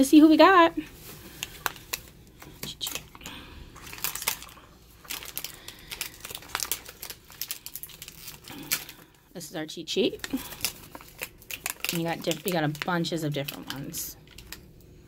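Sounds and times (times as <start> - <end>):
plastic wrapper crinkling: 0.0 - 9.3, 10.0 - 15.0.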